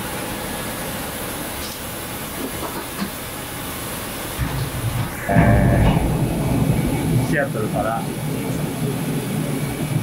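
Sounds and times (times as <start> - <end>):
vehicle interior rumble: 4.3 - 9.6.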